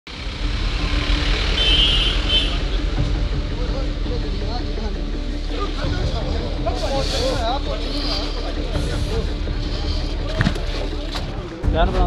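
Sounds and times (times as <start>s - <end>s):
van engine running: 0.1s - 6.5s
crowd voices: 2.3s - 12.0s.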